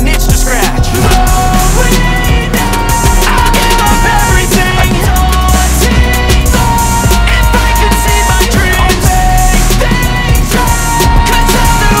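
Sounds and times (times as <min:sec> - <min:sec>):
hip-hop music with steady beat: 0:00.0 - 0:12.0.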